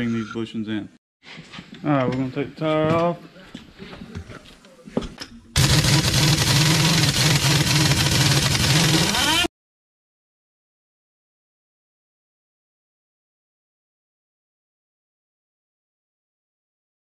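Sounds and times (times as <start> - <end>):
pneumatic impact wrench hammering: 5.6 - 9.5.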